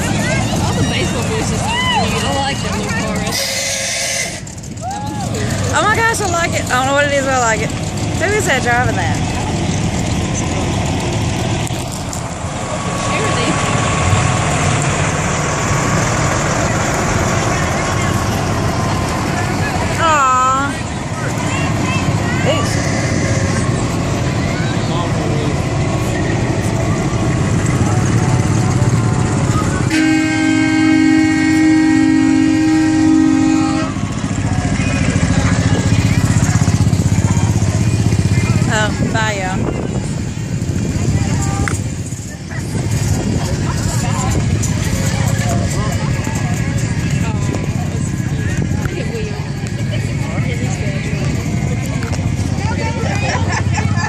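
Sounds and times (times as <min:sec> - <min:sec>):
vehicles rolling past: 0:00.0 - 0:54.0
vehicle horn blast: 0:03.3 - 0:04.5, 0:29.9 - 0:34.0.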